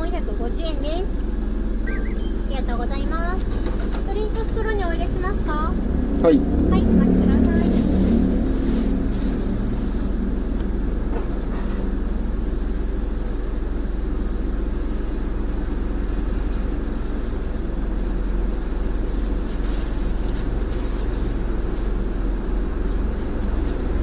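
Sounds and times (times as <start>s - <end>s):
car engine idling: 0.0s - 24.0s.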